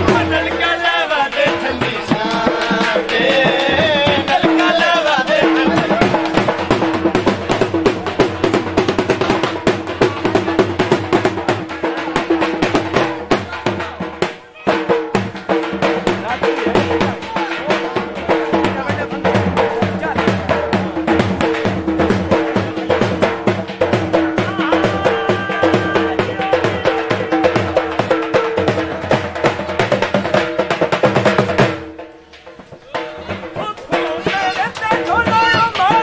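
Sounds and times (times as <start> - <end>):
drum beaten in fast rhythm: 0.0 - 36.0.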